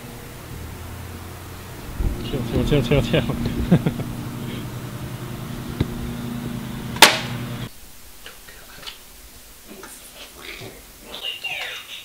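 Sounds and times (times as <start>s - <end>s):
low mechanical hum: 0.0s - 9.7s
sharp bang: 6.8s - 7.7s.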